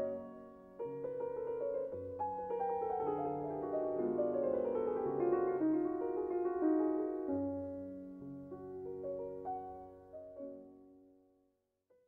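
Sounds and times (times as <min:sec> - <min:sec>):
soft solo piano: 0:00.0 - 0:11.2.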